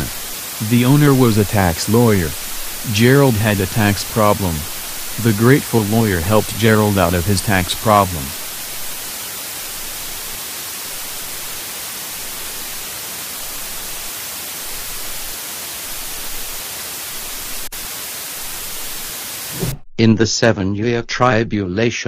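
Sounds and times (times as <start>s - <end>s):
static hiss: 0.0s - 19.8s.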